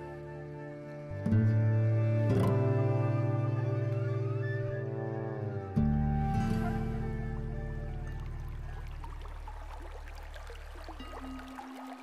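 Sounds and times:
calm background music: 0.0 - 12.0
trickling bubbling water: 7.2 - 12.0.

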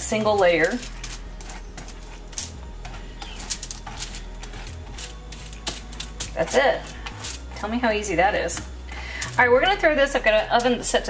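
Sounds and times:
spoon scraping seeds on foil: 0.0 - 11.0.

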